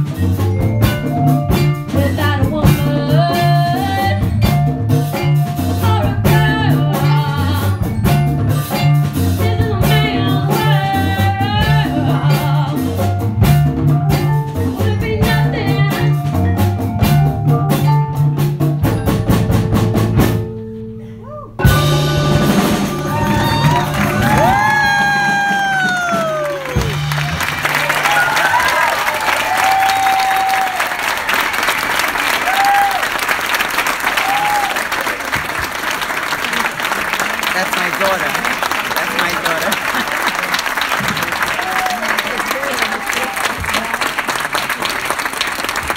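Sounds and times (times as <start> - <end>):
band playing chord: 21.6 - 24.8
audience applauding: 22.6 - 45.9
whoops and cheers: 23.0 - 31.5, 32.3 - 33.2, 34.1 - 35.2, 41.4 - 43.7.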